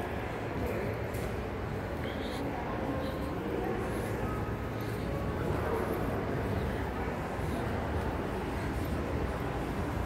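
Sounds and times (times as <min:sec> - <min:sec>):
shopping mall low rumble: 0:00.0 - 0:10.0.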